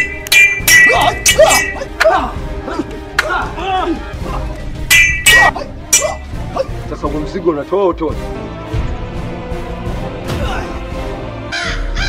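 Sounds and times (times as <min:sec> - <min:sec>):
music soundtrack: 0:00.0 - 0:11.5
crow cawing: 0:11.5 - 0:12.0.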